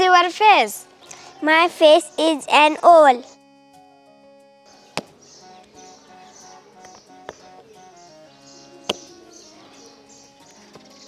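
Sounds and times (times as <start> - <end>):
faint outdoor ambience: 0.0 - 11.0
soft background music: 0.0 - 11.0.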